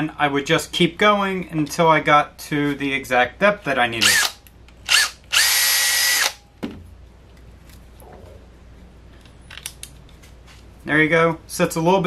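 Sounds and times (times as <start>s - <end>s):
cordless drill whine: 4.9s - 6.4s.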